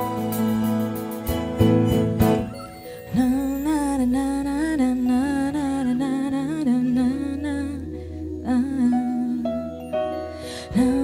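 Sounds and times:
soft live accompaniment: 0.0 - 11.0
woman humming a melody: 3.1 - 10.1.

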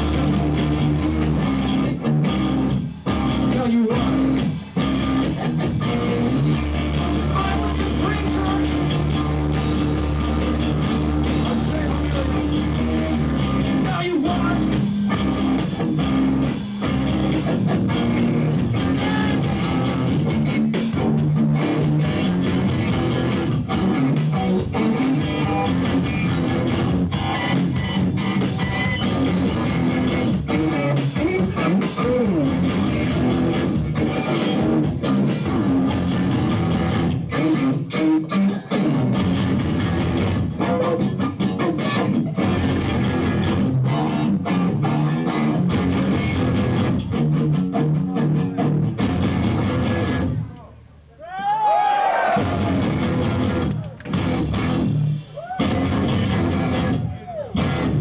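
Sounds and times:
noise rock band playing: 0.0 - 50.8, 51.7 - 58.0.

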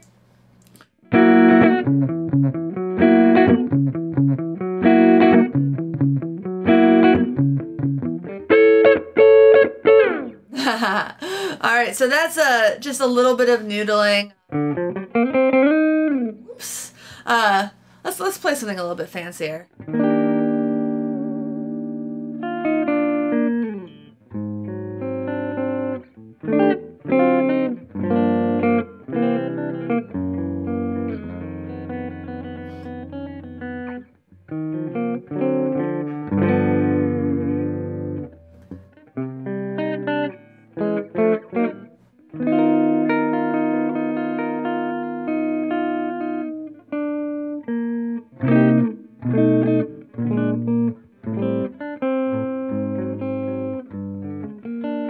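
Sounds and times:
clean electric guitar playing: 0.0 - 11.6, 14.4 - 17.6, 19.7 - 55.0.

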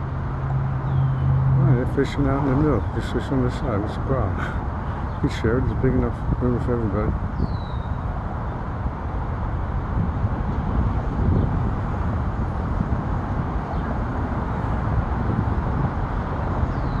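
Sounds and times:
low outdoor rumble: 0.0 - 17.0
bird chirp: 0.8 - 4.2, 4.8 - 6.1, 7.3 - 8.6, 16.6 - 17.0.

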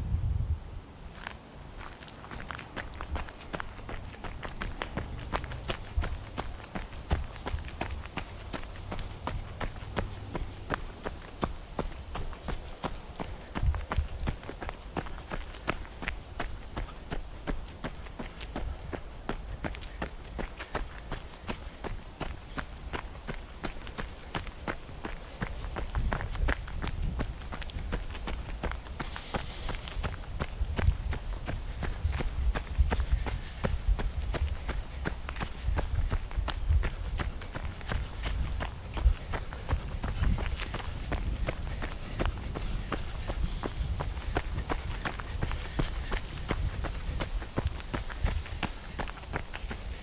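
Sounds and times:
running footsteps on leafy dirt: 1.1 - 50.0.

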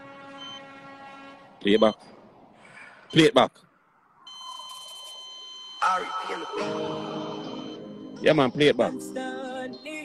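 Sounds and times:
high electronic beep tones: 4.3 - 8.6
recorded song playing: 5.8 - 10.0.

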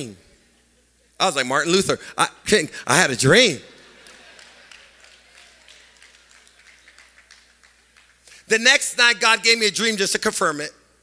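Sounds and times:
light clapping: 3.8 - 8.3.

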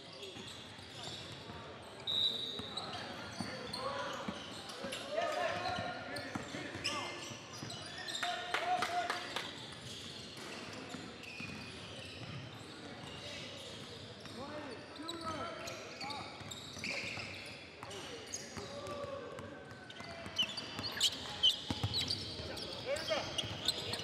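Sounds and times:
shoe squeaks: 0.1 - 8.4, 9.6 - 18.8, 19.8 - 24.0
murmur of voices echoing: 17.8 - 24.0.

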